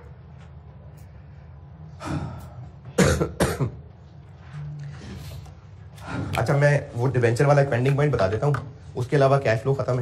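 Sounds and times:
person coughing: 2.0s - 3.9s.

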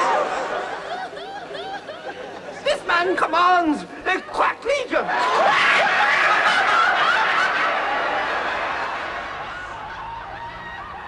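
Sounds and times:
crowd laughing: 0.0s - 4.4s, 5.0s - 11.0s.

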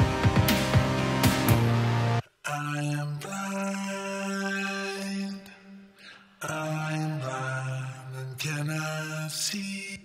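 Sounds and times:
voice singing with chorus effect: 0.0s - 10.0s.

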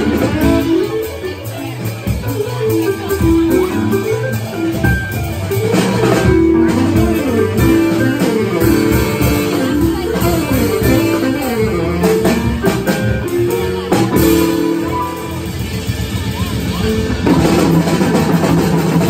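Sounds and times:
drum kit: 0.0s - 19.0s
electric keyboard: 0.0s - 19.0s
upright bass walking line: 0.0s - 19.0s
saxophone: 2.8s - 17.6s.

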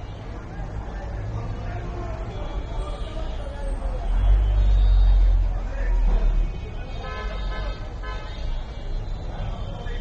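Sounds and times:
low traffic rumble: 0.0s - 10.0s
vehicle horn tooting: 6.9s - 8.7s.

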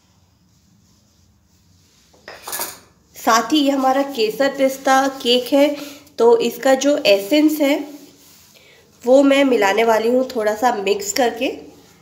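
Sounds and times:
kitchen utensils and dishes clattering: 2.2s - 2.9s.

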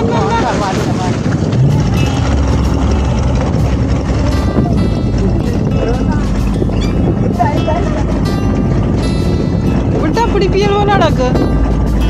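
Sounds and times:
voices: 0.0s - 8.4s, 9.8s - 11.5s
small boat engine rumble: 0.0s - 12.0s
water noise: 0.0s - 12.0s
wind noise: 0.0s - 12.0s.

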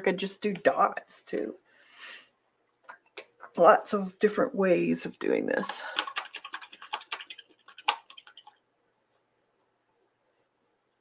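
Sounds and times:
small hard objects clicking on table: 5.6s - 8.6s.

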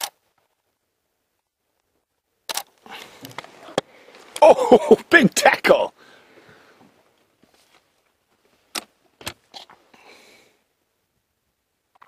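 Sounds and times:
camera shutter clicking: 2.5s - 2.7s
faint short rustle: 6.7s - 8.7s.

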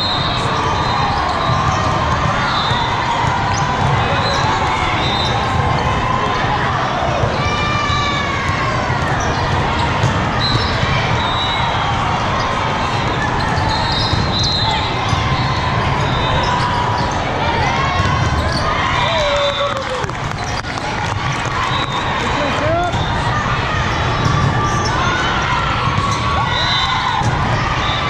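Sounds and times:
sneakers squeaking on floor: 0.0s - 5.6s, 8.9s - 19.5s, 20.3s - 22.1s, 23.9s - 28.0s
volleyballs hit and bouncing: 0.1s - 28.0s
overlapping voices: 18.8s - 22.9s.

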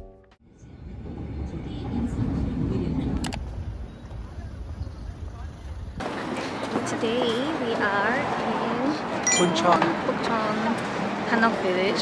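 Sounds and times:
noisy street scene: 0.4s - 12.0s
road traffic rumble: 0.4s - 12.0s
indistinct voices of passers-by: 0.5s - 12.0s.

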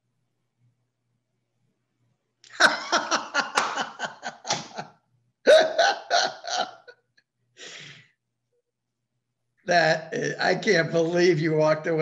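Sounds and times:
person laughing loudly: 2.5s - 4.8s, 5.5s - 6.9s.

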